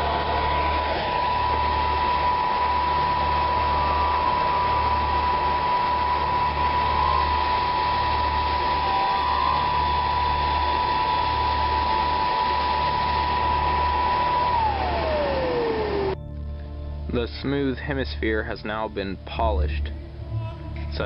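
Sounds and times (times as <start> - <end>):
fan whirring with high whine: 0.0 - 18.2.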